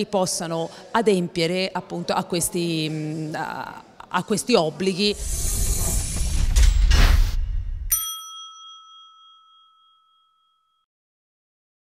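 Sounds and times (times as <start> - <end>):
bright chime ringing: 7.9 - 10.8.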